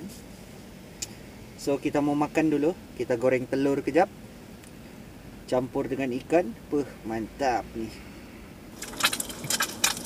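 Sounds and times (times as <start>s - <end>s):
egg frying in oil: 8.8s - 10.0s.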